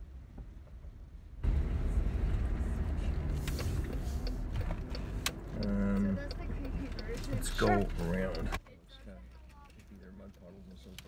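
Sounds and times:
car engine and road hum: 0.0s - 11.0s
road and outside noise: 0.0s - 11.0s.

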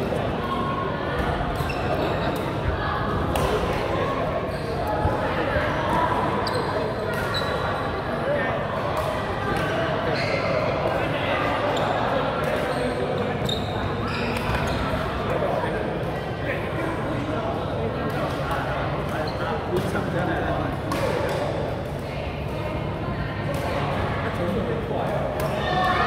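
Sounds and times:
indistinct chatter: 0.0s - 26.0s
shoes squeaking on court floor: 1.6s - 2.4s, 6.3s - 7.9s, 9.6s - 10.8s, 11.7s - 15.3s, 19.1s - 19.9s.

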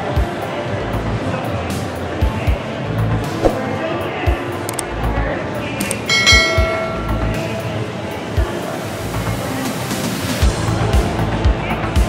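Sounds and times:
notification bell chime: 6.1s - 7.6s.

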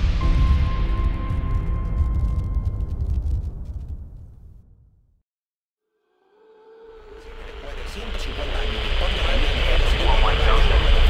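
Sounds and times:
low rumble: 0.0s - 5.2s, 6.3s - 11.0s
man's voice: 7.1s - 11.0s.

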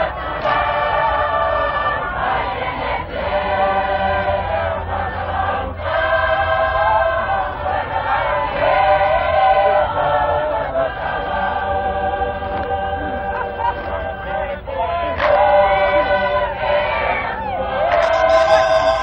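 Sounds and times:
choir singing in parts: 0.0s - 19.0s.

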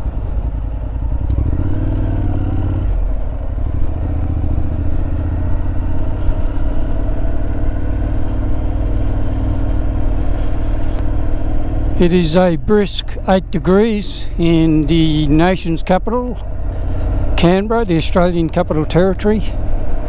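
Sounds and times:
motorcycle engine running: 0.0s - 20.0s
wind and road noise: 0.0s - 20.0s.

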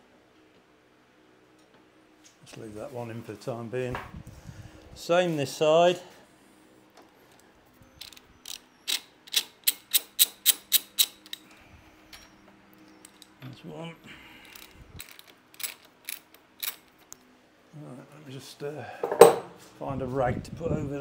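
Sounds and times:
socket ratchet clicking: 8.0s - 11.4s, 14.5s - 17.0s.

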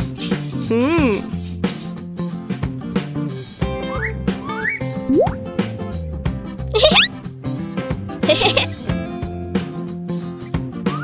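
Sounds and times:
cartoon background music: 5.0s - 5.5s, 6.7s - 7.1s, 8.2s - 8.8s.

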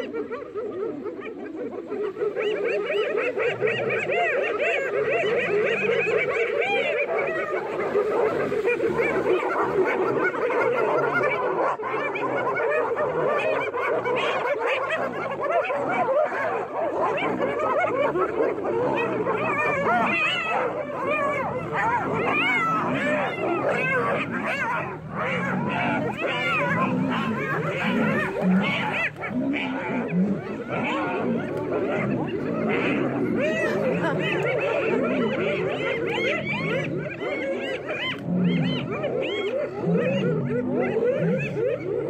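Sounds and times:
hyenas yelping and giggling: 0.0s - 42.0s.

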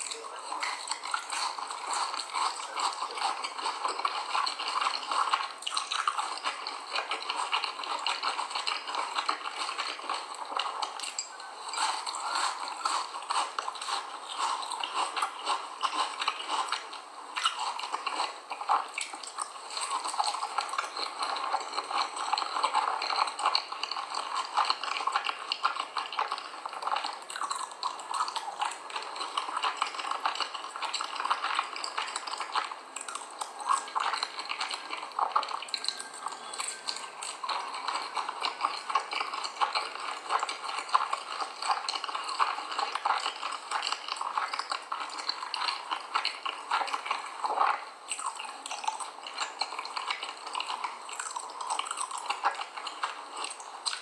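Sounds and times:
chewing crunchy corn starch: 0.0s - 54.0s.

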